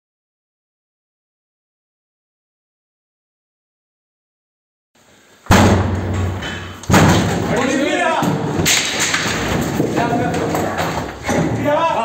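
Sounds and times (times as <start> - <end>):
door heavy thud: 5.5 - 10.2.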